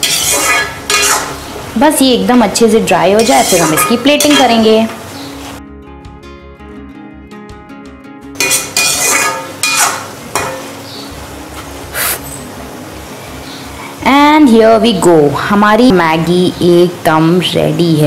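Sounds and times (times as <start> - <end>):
metal spatula scraping a wok: 0.0 - 1.6, 3.1 - 4.7, 8.4 - 10.7
background music: 5.6 - 11.4.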